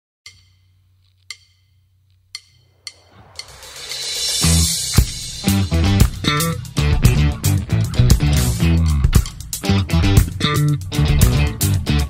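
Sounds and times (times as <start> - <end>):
cymbal swell: 2.6 - 6.8
low hum: 2.6 - 7.8
rock band playing: 3.4 - 12.0.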